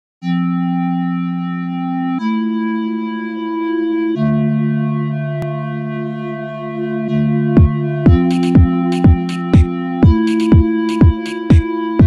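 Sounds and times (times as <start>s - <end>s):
synthesizer chords: 0.2s - 12.0s.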